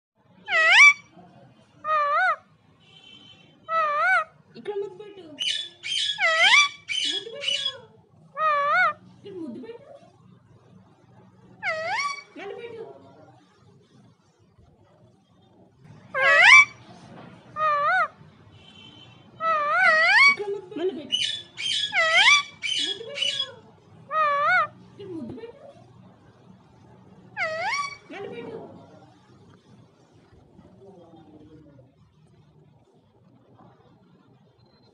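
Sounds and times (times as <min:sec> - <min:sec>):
parakeet harsh screeches: 0:00.5 - 0:01.1, 0:05.4 - 0:07.8, 0:11.6 - 0:12.4, 0:16.1 - 0:16.8, 0:17.6 - 0:20.4, 0:21.1 - 0:23.5, 0:27.4 - 0:28.1
parakeet warbling call: 0:00.5 - 0:01.1, 0:01.8 - 0:04.4, 0:05.4 - 0:07.8, 0:11.6 - 0:12.4, 0:16.1 - 0:16.8, 0:17.6 - 0:20.4, 0:21.1 - 0:24.8, 0:27.3 - 0:28.1.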